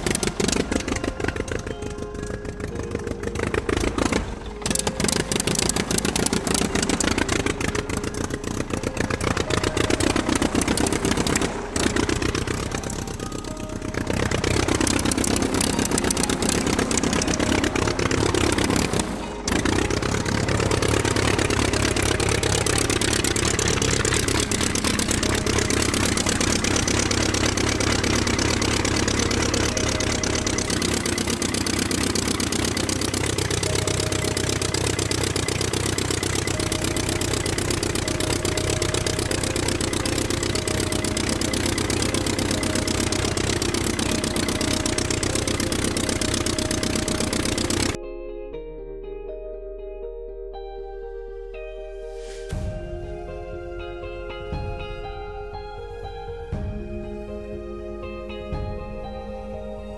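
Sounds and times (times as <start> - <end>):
small electric motor rattling: 0.0 - 48.0.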